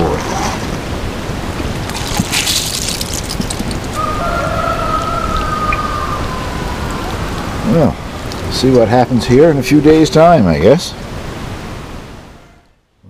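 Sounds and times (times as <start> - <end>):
watering can water pattering on soil: 1.7 - 5.8.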